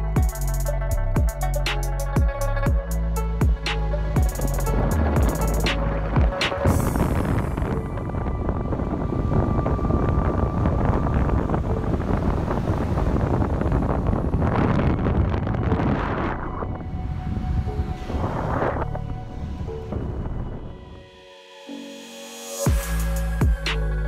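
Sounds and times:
wheels rumbling on asphalt: 2.5s - 20.6s
wind buffeting microphone: 2.6s - 21.1s.

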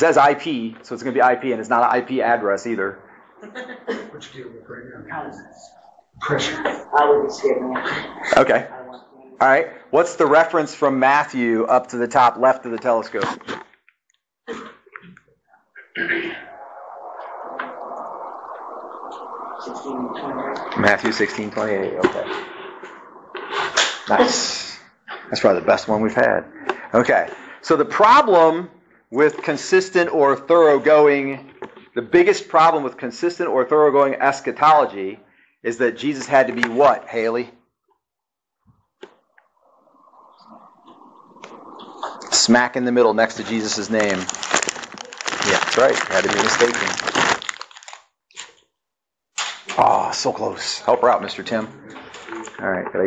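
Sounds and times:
faint room noise: 0.0s - 13.8s, 14.5s - 37.7s, 38.6s - 48.6s, 49.4s - 53.0s
person coughing: 14.5s - 14.9s
room noise hiss: 16.6s - 31.4s.

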